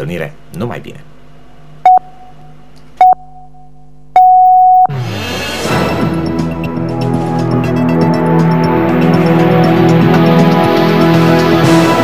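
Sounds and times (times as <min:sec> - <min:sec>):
electronic countdown beeps: 0:01.8 - 0:02.4, 0:03.0 - 0:04.9
news theme music: 0:06.0 - 0:12.0.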